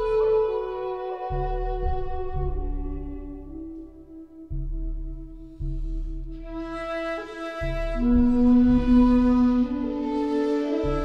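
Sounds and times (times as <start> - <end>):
bamboo flute long notes: 0.0 - 11.0
low accompaniment: 0.0 - 11.0.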